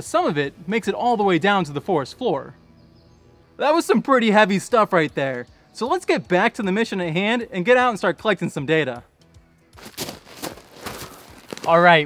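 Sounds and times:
soft background music: 0.0s - 12.0s
crunching of gravel: 9.8s - 12.0s.

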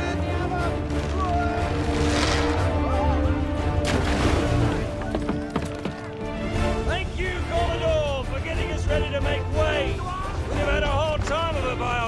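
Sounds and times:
orchestral film score: 0.0s - 12.0s.

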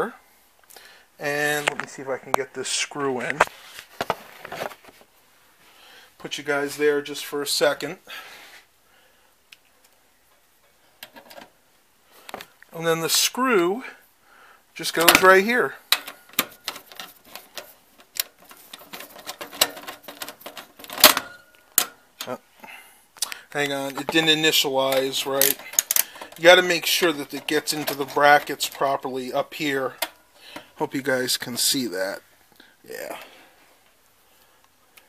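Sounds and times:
faint rubbing and scraping: 14.8s - 21.0s
screwdriver clicking and scraping metal: 15.9s - 22.0s, 24.8s - 28.9s.

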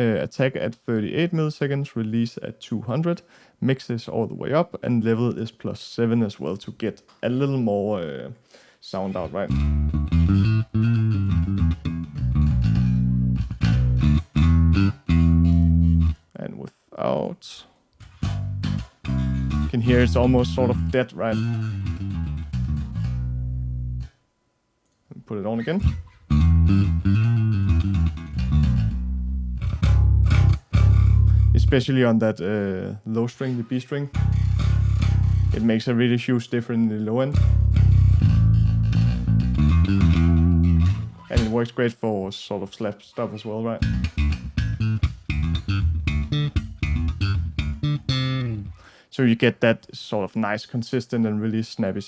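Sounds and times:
electric bass guitar notes: 9.0s - 16.4s, 18.0s - 24.2s, 25.1s - 33.0s, 34.1s - 36.1s, 37.3s - 41.6s, 43.5s - 49.0s.

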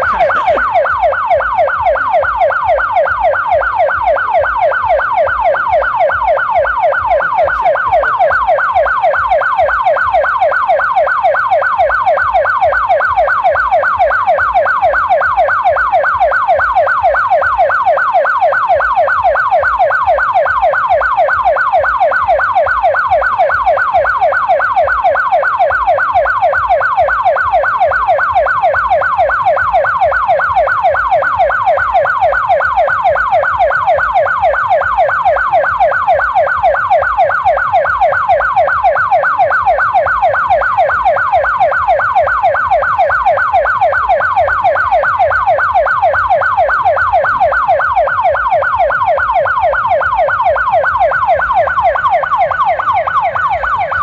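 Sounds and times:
siren yelping: 0.0s - 54.0s.

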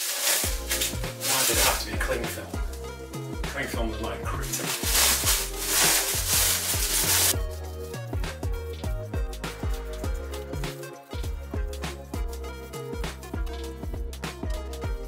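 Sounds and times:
plastic wrap crackling: 0.0s - 1.9s, 4.4s - 7.4s
background music with beat: 0.0s - 15.0s.

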